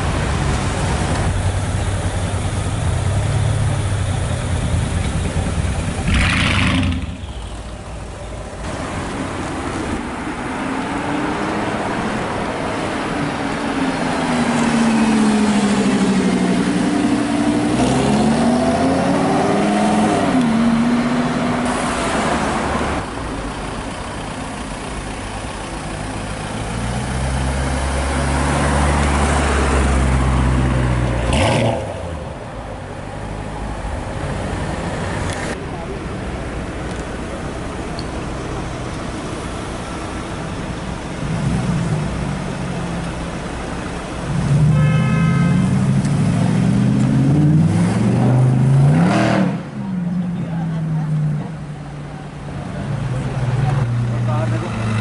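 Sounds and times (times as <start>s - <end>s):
car engine revving: 5.2s - 7.2s.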